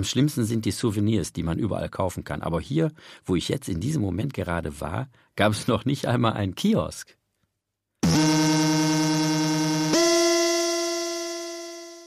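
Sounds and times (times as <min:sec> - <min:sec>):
synthesizer held note: 0:08.0 - 0:12.0.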